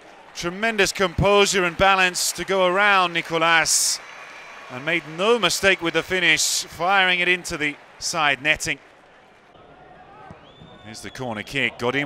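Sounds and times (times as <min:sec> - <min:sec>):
sparse stadium crowd: 0:00.0 - 0:12.0.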